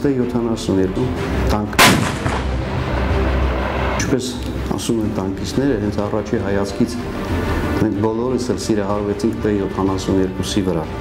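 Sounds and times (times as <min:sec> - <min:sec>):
tank gun shot rumbling: 0:01.8 - 0:02.9.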